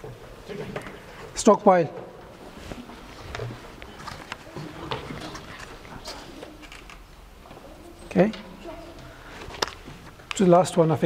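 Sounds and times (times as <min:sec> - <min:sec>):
faint indistinct voices: 0:02.4 - 0:09.6.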